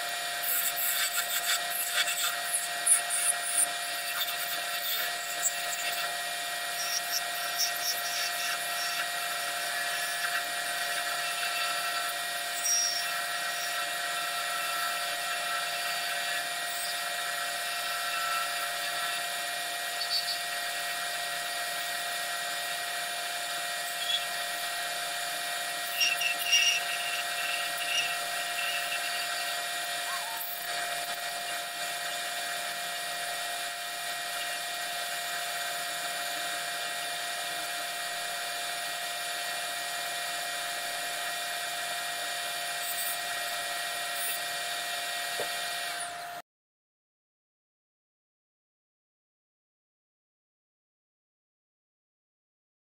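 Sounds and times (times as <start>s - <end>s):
wood lathe whining: 0.0s - 46.4s
turning tool squeaks: 0.2s - 38.8s, 42.6s - 44.5s.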